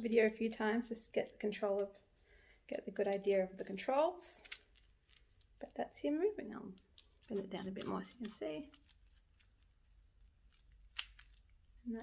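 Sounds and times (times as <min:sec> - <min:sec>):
faint handling noise: 0:03.0 - 0:05.6.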